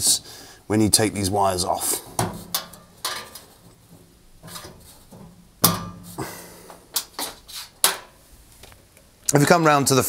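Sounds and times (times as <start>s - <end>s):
wires knocking on sheet metal: 2.2s - 6.2s.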